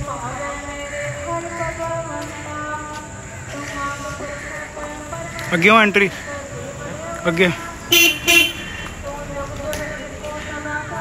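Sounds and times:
street background noise: 0.0s - 11.0s
vehicle horn honking: 7.8s - 9.2s.

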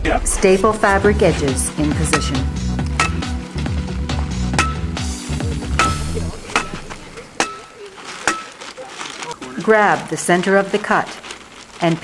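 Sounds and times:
background music: 0.0s - 7.9s.

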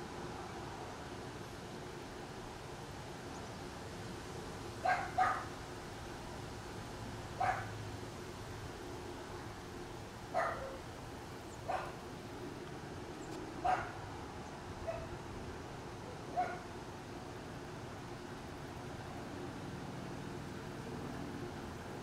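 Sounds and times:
faint steady hum: 0.0s - 22.0s
dog barking: 4.8s - 5.5s, 7.4s - 7.7s, 10.3s - 10.8s, 11.7s - 12.0s, 13.6s - 14.0s, 14.8s - 15.1s, 16.3s - 16.7s.

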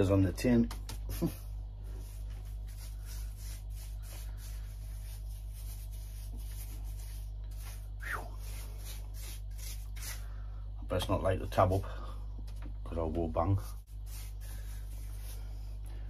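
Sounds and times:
steady low hum: 0.0s - 16.0s
paintbrush bristle strokes: 1.1s - 10.4s, 13.6s - 15.8s.

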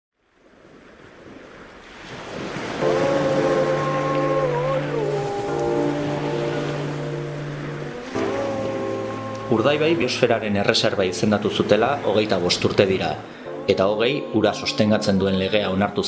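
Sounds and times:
sea waves: 0.2s - 16.0s
held music chords: 2.8s - 16.0s.

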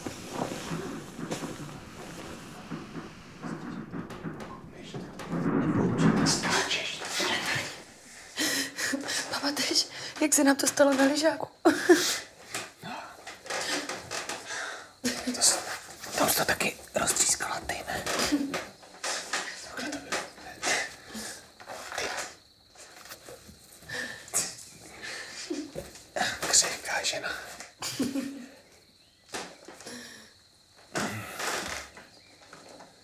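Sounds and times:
people talking: 4.5s - 7.8s, 9.3s - 11.8s.

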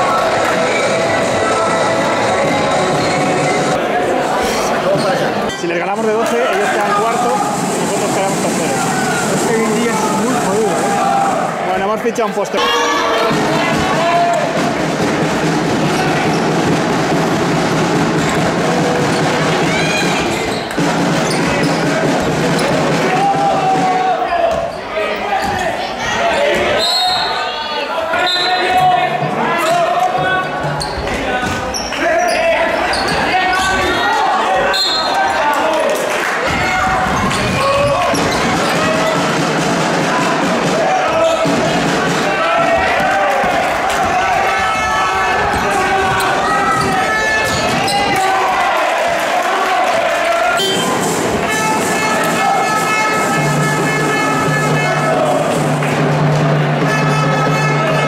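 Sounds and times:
voices of players and spectators: 0.0s - 58.0s.

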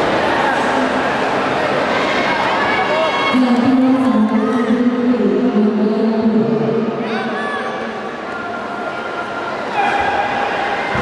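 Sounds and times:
voices shouting and yelling: 7.0s - 11.0s.

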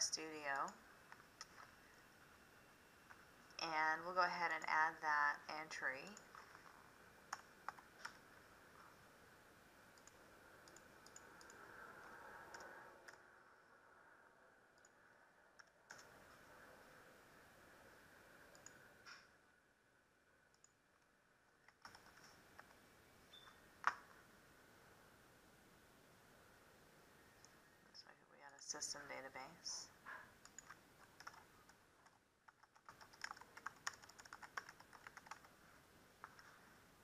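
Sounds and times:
computer keyboard keystrokes: 10.0s - 11.6s, 21.7s - 22.8s, 30.4s - 35.5s
mouse clicks: 10.0s - 11.6s.

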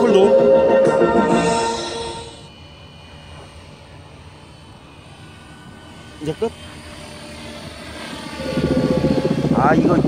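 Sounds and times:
music: 0.0s - 2.5s
model helicopter rotor hum: 0.0s - 10.0s.

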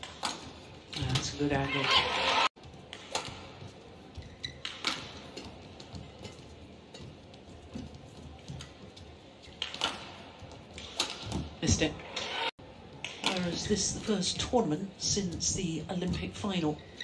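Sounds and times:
rackets smacking shuttlecock: 0.0s - 1.4s, 2.8s - 3.6s, 4.2s - 7.2s, 9.4s - 11.5s.

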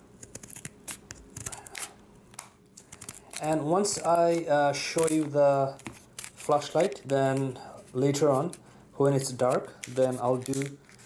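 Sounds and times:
scissors snipping plastic: 0.2s - 4.4s, 5.0s - 7.5s, 9.5s - 11.0s.

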